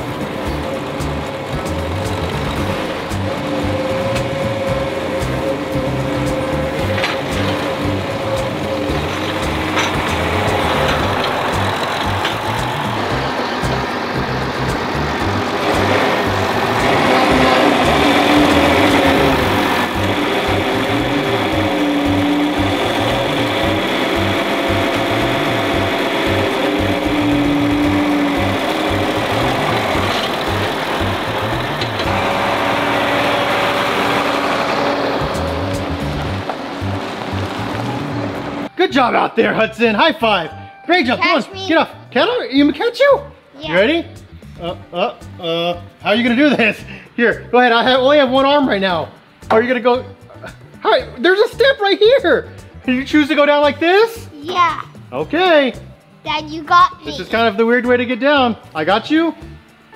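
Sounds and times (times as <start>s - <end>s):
music with steady beat: 0.0s - 34.4s, 35.2s - 38.0s, 48.4s - 59.9s
tractor engine running: 0.0s - 38.7s.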